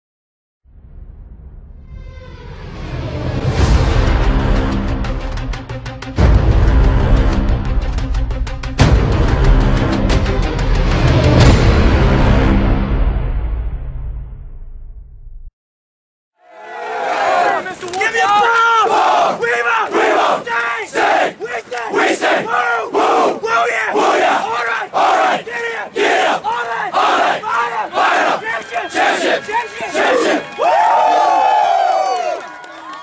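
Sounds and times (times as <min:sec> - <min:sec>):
crowd chanting in unison: 0:16.4 - 0:30.6
crowd long held yell: 0:16.4 - 0:33.0.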